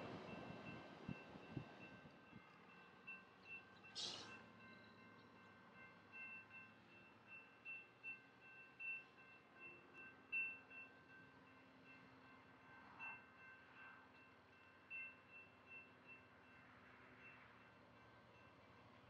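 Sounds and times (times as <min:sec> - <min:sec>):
faint metallic chiming: 0:00.3 - 0:10.9.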